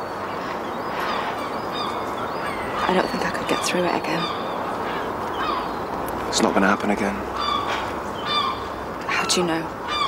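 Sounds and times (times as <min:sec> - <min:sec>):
faint bird calls: 0:00.0 - 0:10.0
outdoor background noise: 0:00.0 - 0:10.0.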